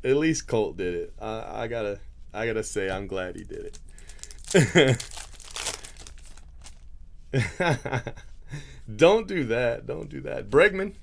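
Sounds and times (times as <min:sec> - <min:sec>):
plastic wrapper crinkling: 0:03.4 - 0:06.9.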